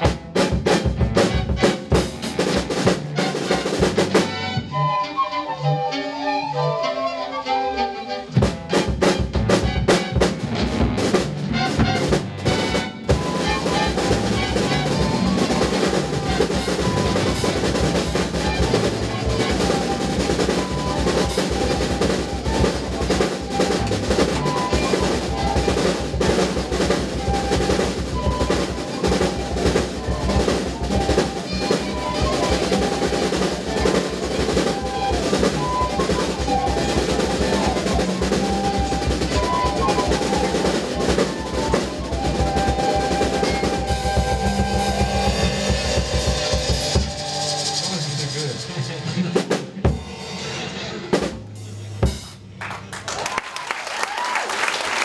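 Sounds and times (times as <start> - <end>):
drum kit with snare rolls: 0.0 - 5.3, 8.2 - 55.0
band instruments holding notes: 0.0 - 55.0.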